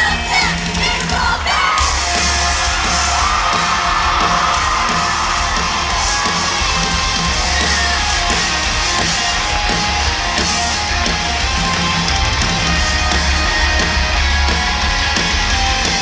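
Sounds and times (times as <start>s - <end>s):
voices singing: 0.0s - 5.5s
crowd yelling and screaming: 0.0s - 16.0s
live rock band playing: 0.0s - 16.0s.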